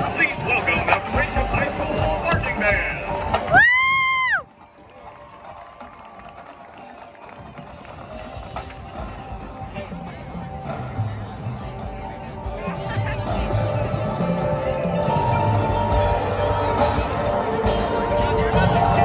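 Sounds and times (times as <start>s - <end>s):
crowd chatter: 0.0s - 19.0s
marching band notes: 5.8s - 19.0s.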